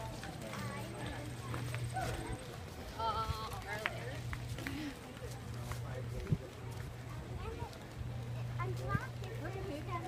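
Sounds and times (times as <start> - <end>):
crowd footsteps on pavement: 0.0 - 10.0
indistinct chatter: 0.0 - 10.0.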